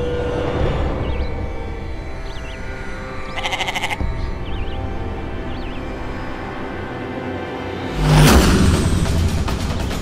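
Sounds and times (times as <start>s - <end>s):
goat bleating: 3.4s - 4.0s.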